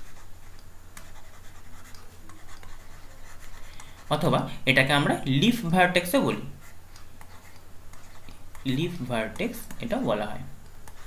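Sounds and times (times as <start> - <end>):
stylus scratching on tablet: 0.0 - 4.4, 5.8 - 10.1
low electrical hum: 0.0 - 11.0.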